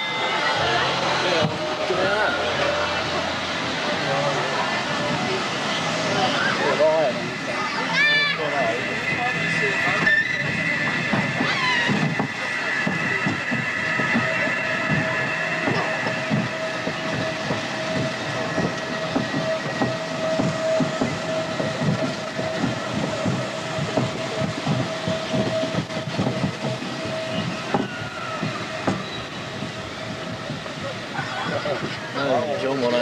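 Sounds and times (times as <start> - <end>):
roller coaster wheels clattering: 0.0 - 33.0
steady whine: 0.0 - 33.0.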